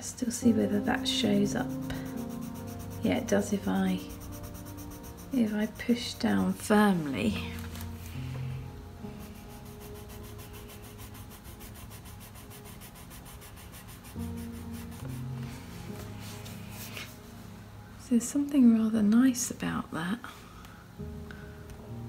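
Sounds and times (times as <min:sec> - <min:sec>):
soft background music: 0:00.0 - 0:22.0
pencil scratching on paper: 0:00.8 - 0:07.1, 0:09.2 - 0:15.2.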